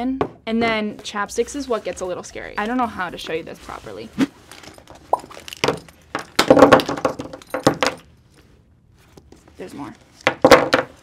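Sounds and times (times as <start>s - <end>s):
fabric bag rustling: 3.0s - 6.0s
small items clattering: 4.4s - 8.1s.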